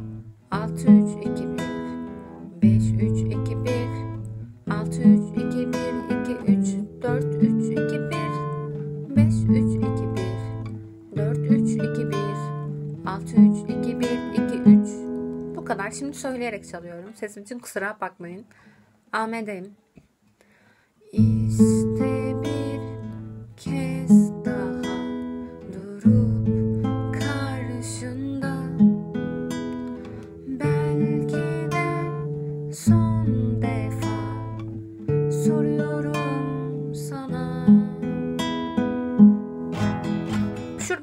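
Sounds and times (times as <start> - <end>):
fingerpicked classical guitar: 0.0 - 17.3, 21.2 - 41.0.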